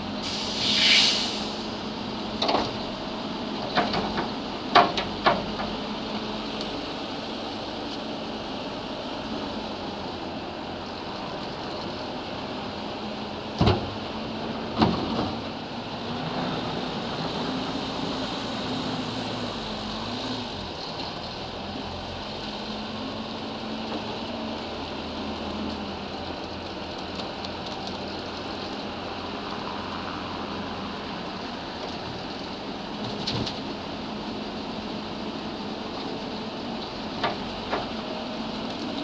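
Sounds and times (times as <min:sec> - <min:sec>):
diesel engine revving: 0:12.3 - 0:27.1.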